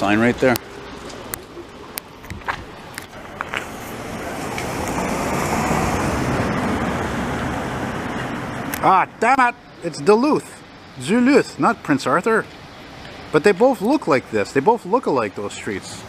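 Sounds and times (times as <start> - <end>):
vehicle passing: 0.0 - 13.6.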